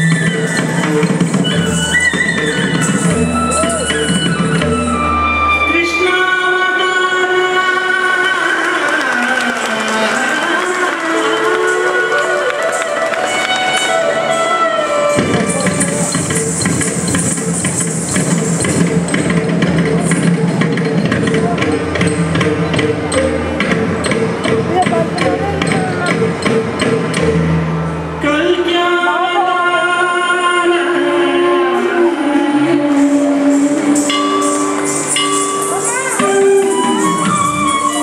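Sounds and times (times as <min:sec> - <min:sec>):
melody with gliding notes: 0:32.9 - 0:38.0.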